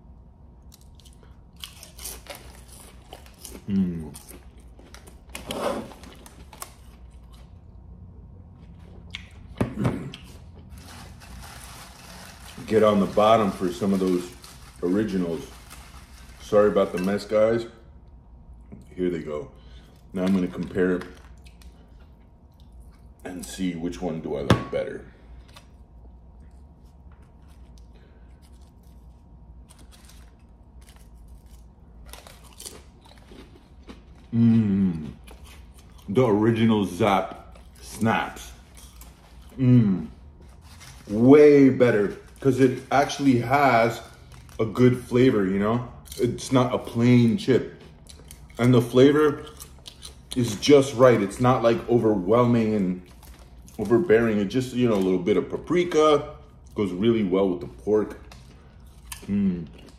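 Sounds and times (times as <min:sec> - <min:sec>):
person chewing potato chips: 0:00.5 - 0:17.4, 0:19.7 - 0:23.3, 0:25.3 - 0:55.2, 0:58.0 - 0:59.9
chips rustling in a bowl: 0:10.6 - 0:17.6, 0:40.2 - 0:45.6.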